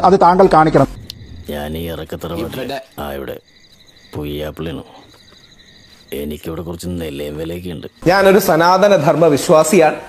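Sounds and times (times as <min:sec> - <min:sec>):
crickets chirping: 0:00.0 - 0:10.0
man's voice: 0:01.5 - 0:03.4.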